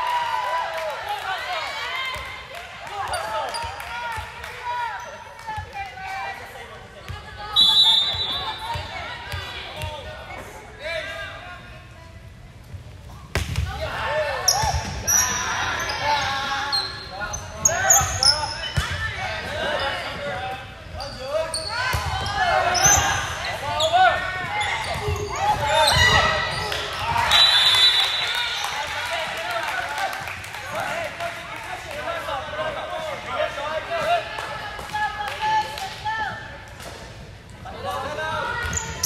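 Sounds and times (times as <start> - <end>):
sneakers squeaking: 3.0 - 3.9, 7.1 - 10.1, 14.4 - 28.8, 38.0 - 39.0.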